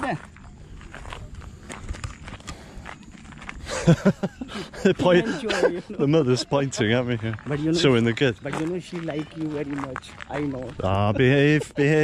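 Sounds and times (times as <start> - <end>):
footsteps on gravel: 0.0 - 4.4, 5.0 - 11.9.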